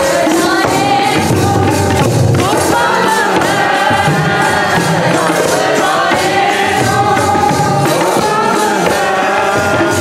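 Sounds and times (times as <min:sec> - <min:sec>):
drum strokes: 0:00.0 - 0:10.0
women singing a hymn: 0:00.0 - 0:10.0.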